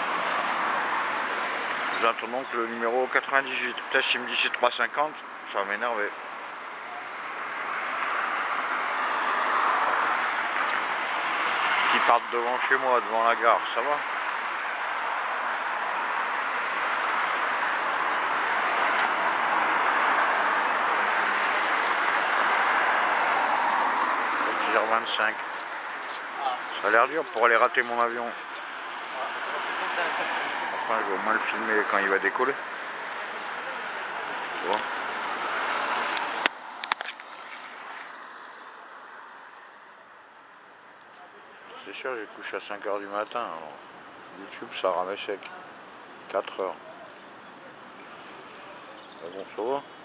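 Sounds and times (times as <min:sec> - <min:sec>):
car engines passing: 0:00.0 - 0:50.0
city street traffic: 0:00.0 - 0:50.0.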